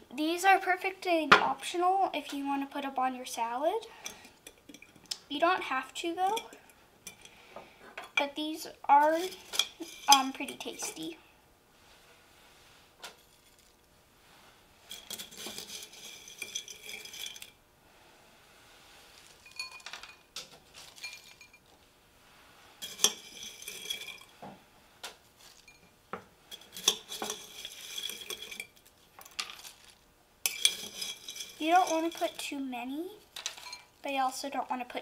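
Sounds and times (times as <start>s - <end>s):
metal spoon clinking on glass: 19.5s - 20.3s, 21.0s - 21.6s, 30.5s - 32.4s, 33.4s - 33.9s.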